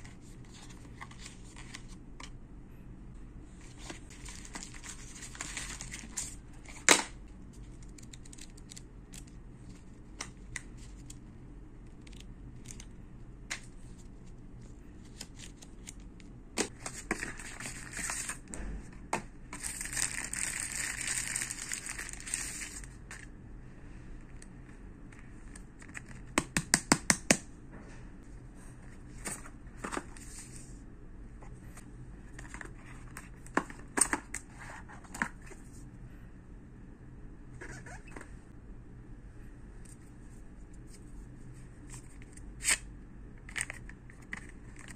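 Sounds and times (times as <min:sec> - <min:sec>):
packaging crinkling: 0:19.6 - 0:23.3.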